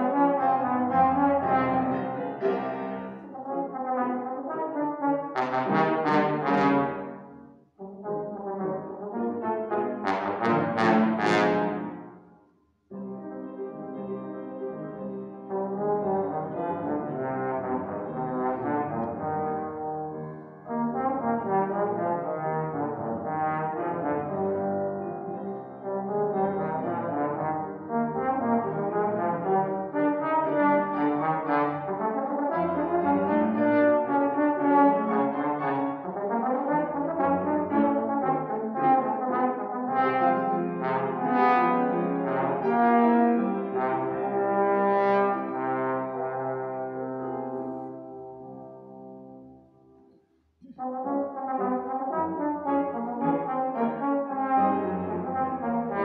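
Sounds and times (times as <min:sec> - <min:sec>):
trombone solo: 0:00.0 - 0:12.1, 0:15.5 - 0:49.6, 0:50.7 - 0:56.0
piano accompaniment: 0:00.0 - 0:56.0.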